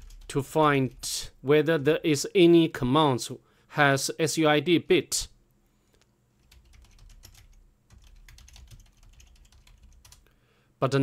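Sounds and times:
fast typing on keyboard: 0:00.0 - 0:00.3, 0:06.4 - 0:10.2.

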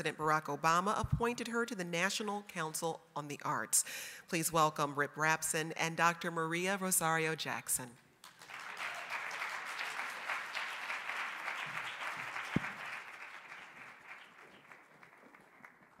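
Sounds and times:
audience applauding: 0:08.2 - 0:16.0.

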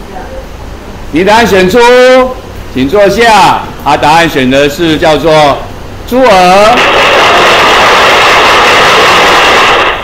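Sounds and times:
loud rushing sound effect: 0:06.6 - 0:10.0.

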